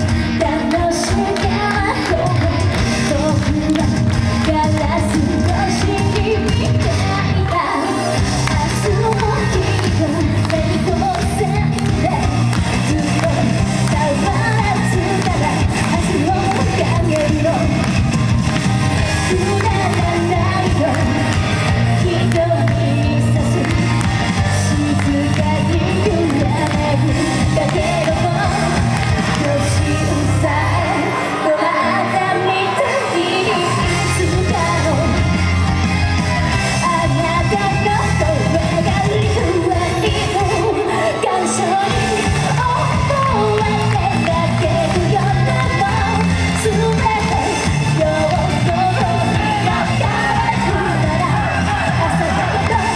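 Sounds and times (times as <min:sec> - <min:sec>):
pop backing track: 0:00.0 - 0:52.9
woman singing pop song: 0:00.0 - 0:52.9.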